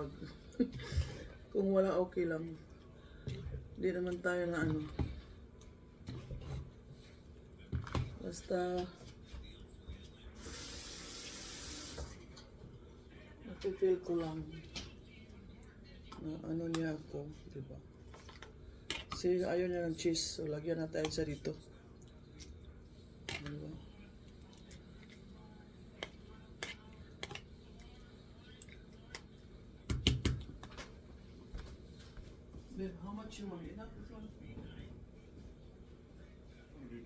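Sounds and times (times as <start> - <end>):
plastic spoon scooping pasta salad: 25.9 - 29.3.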